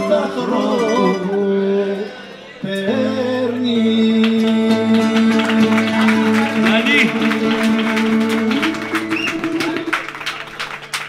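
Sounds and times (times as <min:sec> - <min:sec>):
lute and mandolin playing: 0:00.0 - 0:10.6.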